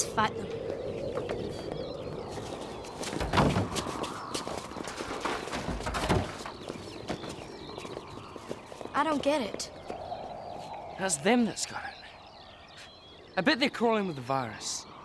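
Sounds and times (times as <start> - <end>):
footsteps running on gravel: 2.3 - 9.7.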